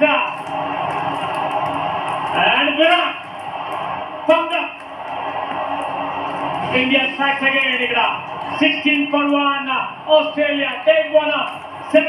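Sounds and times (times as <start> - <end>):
stadium crowd noise on tv: 0.0 - 12.0.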